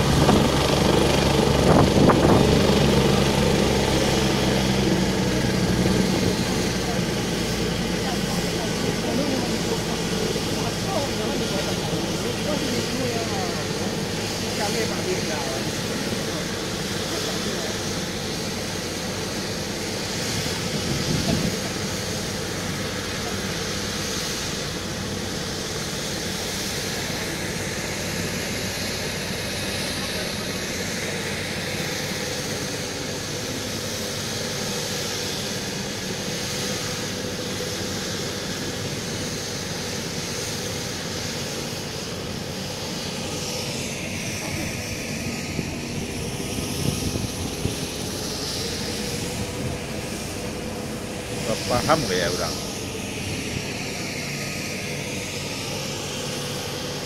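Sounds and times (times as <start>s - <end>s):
helicopter engine and rotor: 0.0s - 57.0s.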